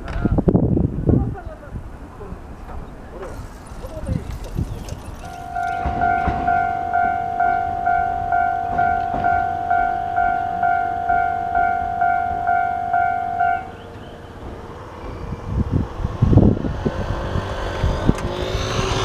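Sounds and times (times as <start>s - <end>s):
level crossing warning bell: 3.4s - 14.4s.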